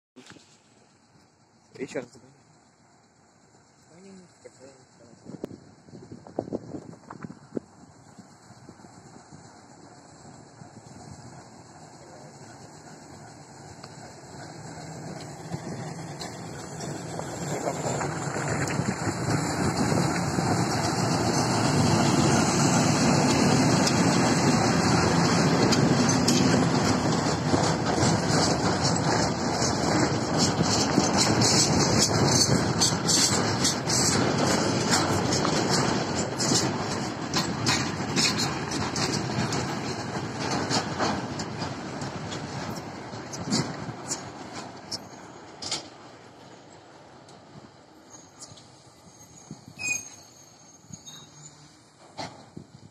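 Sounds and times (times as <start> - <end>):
diesel locomotive engine: 0.2 - 52.9
train wheels clicking on rails: 0.2 - 52.9.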